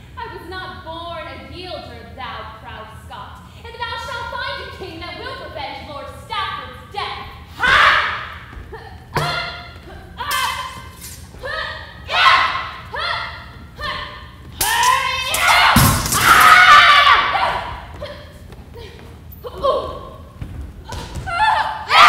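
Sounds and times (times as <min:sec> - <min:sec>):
loud yell: 0:11.5 - 0:17.9, 0:21.3 - 0:22.0
blows thudding on shields: 0:14.6 - 0:16.6.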